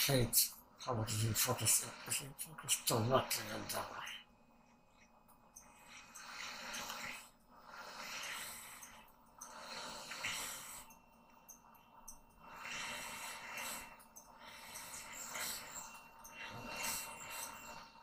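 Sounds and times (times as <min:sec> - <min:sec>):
man breathing through nose: 0:05.6 - 0:11.8, 0:12.4 - 0:18.0.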